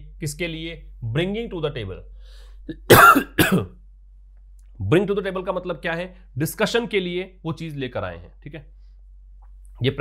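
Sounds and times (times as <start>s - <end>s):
man coughing: 2.9s - 3.7s.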